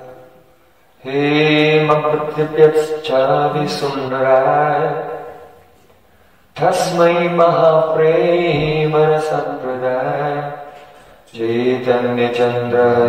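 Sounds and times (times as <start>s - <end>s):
man chanting a prayer: 1.0s - 5.3s, 6.6s - 10.7s, 11.3s - 13.0s.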